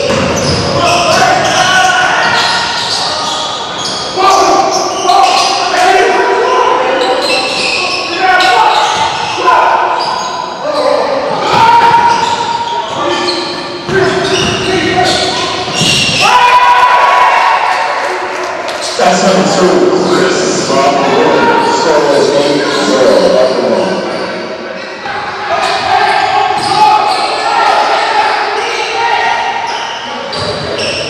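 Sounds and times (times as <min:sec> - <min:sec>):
basketball bouncing on wooden court: 0:00.0 - 0:00.8, 0:15.6 - 0:16.2
voices echoing in a gym: 0:00.0 - 0:31.0.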